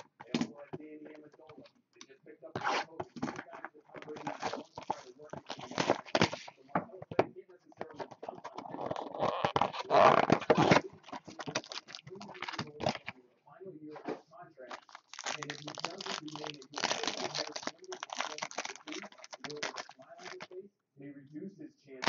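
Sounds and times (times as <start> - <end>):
low voice: 0.2 - 22.0
foil wrapper crinkling and tearing: 4.0 - 6.6, 8.3 - 13.2, 14.7 - 20.5.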